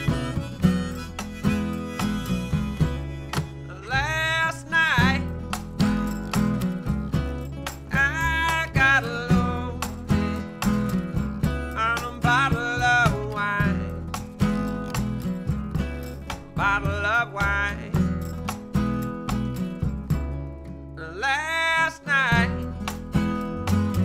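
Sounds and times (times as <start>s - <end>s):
man singing: 0.0s - 5.5s, 7.9s - 14.6s, 16.6s - 18.2s, 21.0s - 22.8s
plucked upright bass: 0.0s - 21.2s, 22.3s - 24.0s
strummed acoustic guitar: 0.0s - 24.0s.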